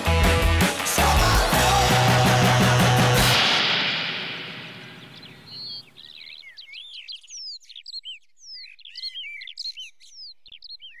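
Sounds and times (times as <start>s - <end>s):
closing theme music: 0.0s - 6.0s
songbirds chirping and singing: 5.0s - 11.0s.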